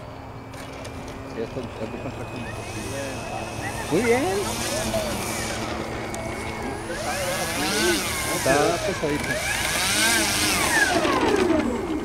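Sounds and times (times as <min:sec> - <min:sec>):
model plane electric motor whine: 0:00.0 - 0:12.0.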